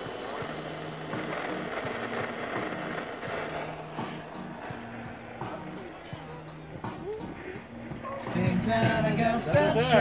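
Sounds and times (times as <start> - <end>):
low stepping tones: 0.0 - 9.1
blowtorch hissing: 0.0 - 10.0.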